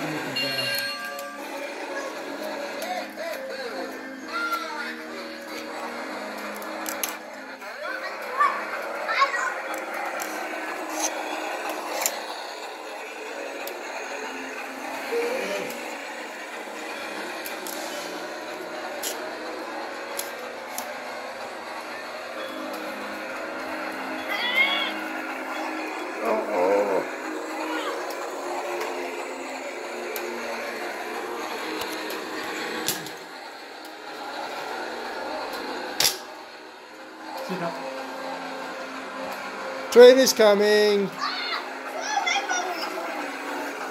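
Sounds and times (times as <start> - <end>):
child's voice: 4.2 - 5.0, 7.7 - 9.8, 24.2 - 25.0, 26.4 - 28.2, 41.2 - 43.2.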